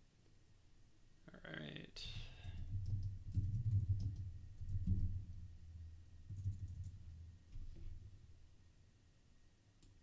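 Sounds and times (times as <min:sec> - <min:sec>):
short wordless voice sound: 0:01.2 - 0:02.4
typing on computer keyboard: 0:02.4 - 0:04.9.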